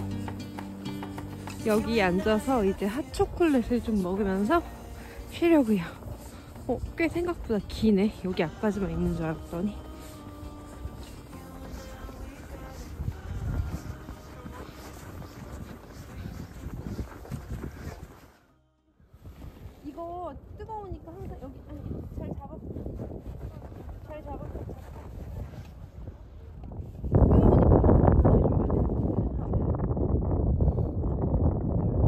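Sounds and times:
wind rumbling on microphone: 0.8 - 32.0.

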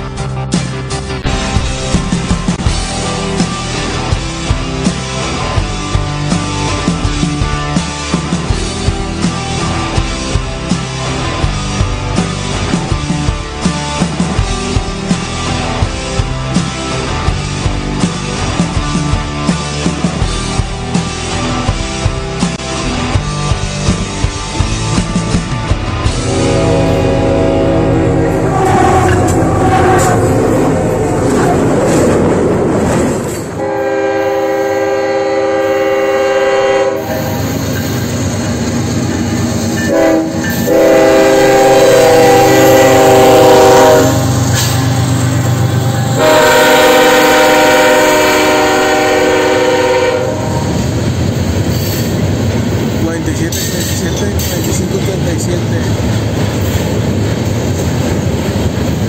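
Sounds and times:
freight cars rumbling: 0.0 - 35.0, 36.9 - 59.0
loud rushing noise: 0.7 - 34.6, 37.0 - 48.3
locomotive air horn blasts: 26.2 - 30.9, 33.6 - 37.4, 39.8 - 50.8.

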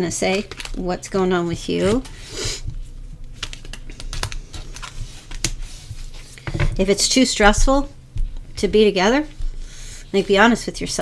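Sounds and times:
cards being handled: 2.8 - 6.4.

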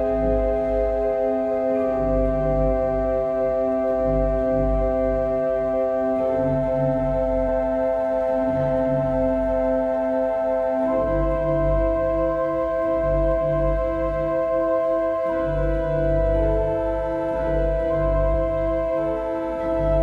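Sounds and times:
low organ pedal notes: 0.0 - 20.0
pipe organ chords: 0.0 - 20.0.

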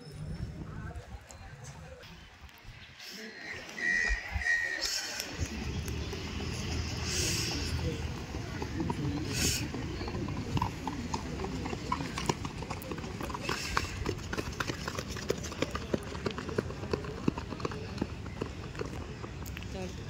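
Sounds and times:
voices: 0.0 - 20.0.

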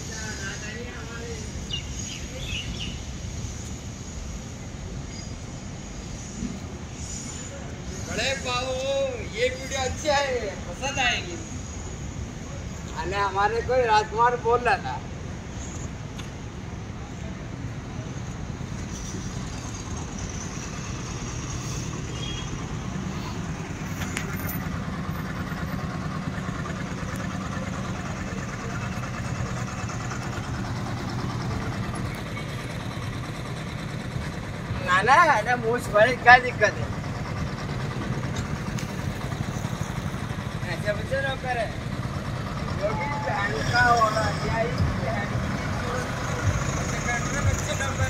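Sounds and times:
road and traffic noise: 0.0 - 48.0
vehicle engine rumbling: 0.0 - 48.0.

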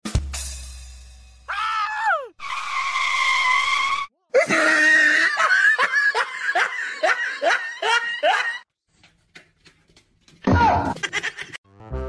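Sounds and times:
high-pitched shriek: 2.4 - 4.1.

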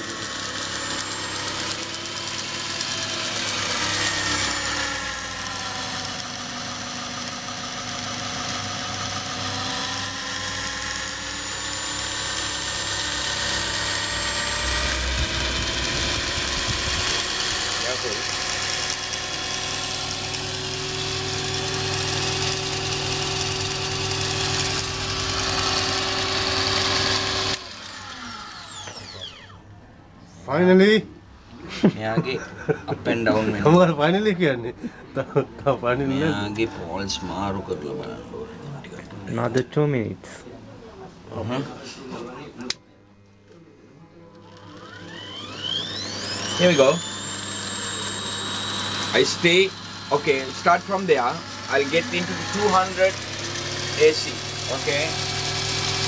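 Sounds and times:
grinder motor humming and whining: 0.0 - 29.8, 35.6 - 38.4, 43.4 - 56.0
falling whine spinning down: 3.0 - 30.4, 35.5 - 38.4, 44.2 - 56.0.

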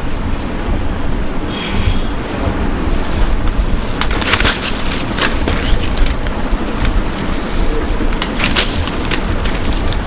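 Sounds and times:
low rumble with hiss: 0.0 - 10.0.

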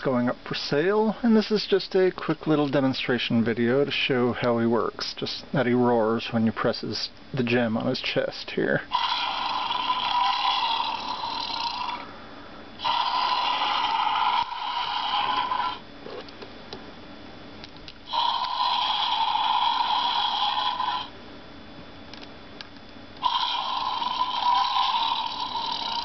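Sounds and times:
toy dragon roar from small speaker: 8.9 - 12.1, 12.8 - 15.8, 18.1 - 21.1, 23.2 - 26.0.

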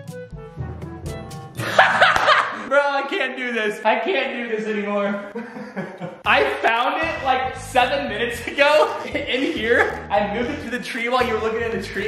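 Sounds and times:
background music with light notes: 0.0 - 1.8, 6.2 - 12.0
man laughing loudly: 1.6 - 2.7, 5.3 - 6.6, 8.7 - 10.6.

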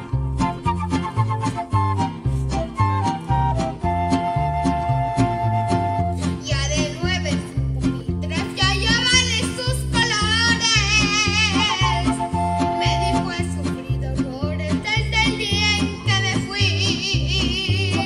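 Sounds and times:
boy singing with vibrato: 6.4 - 7.6, 8.2 - 18.0.

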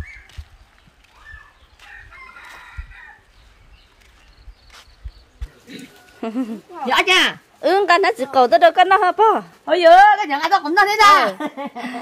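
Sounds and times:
footsteps on dirt path: 0.0 - 6.2
rooster crowing: 1.8 - 3.3.

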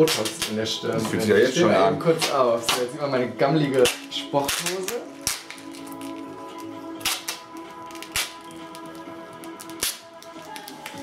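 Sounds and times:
faint background music: 0.0 - 11.0
duct tape ripping off roll: 3.7 - 11.0.

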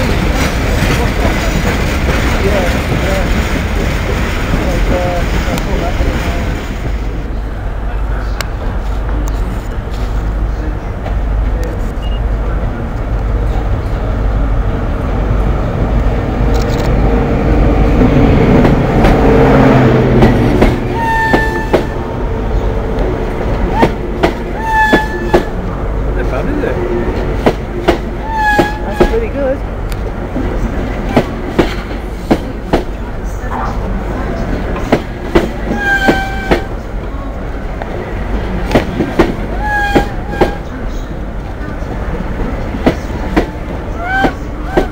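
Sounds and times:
diesel train engine rumble: 0.0 - 44.9.

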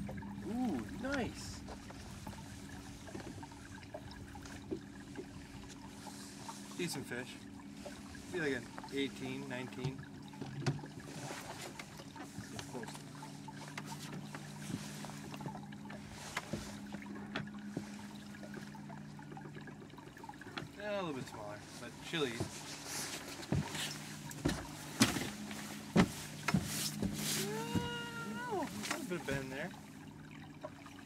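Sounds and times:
boat motor humming: 0.0 - 31.0.

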